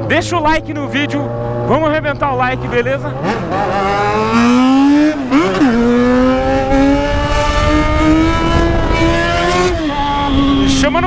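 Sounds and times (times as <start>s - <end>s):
motorcycle engine revving: 0.0s - 11.0s
wind rumble on microphone: 5.6s - 11.0s.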